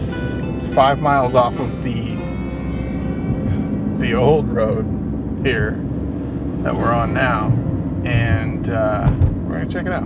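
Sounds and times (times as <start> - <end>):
background music: 0.0 - 5.6, 6.6 - 9.5
car road and engine noise: 0.0 - 10.0.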